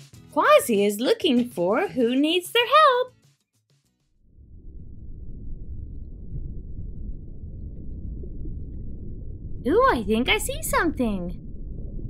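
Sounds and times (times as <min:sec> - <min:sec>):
low steady rumble: 0:04.2 - 0:12.0.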